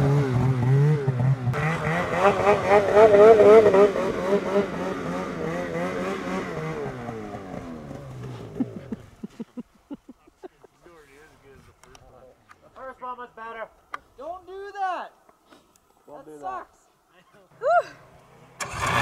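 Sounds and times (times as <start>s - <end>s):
snowmobile engine running: 0.0s - 9.6s, 18.6s - 19.0s.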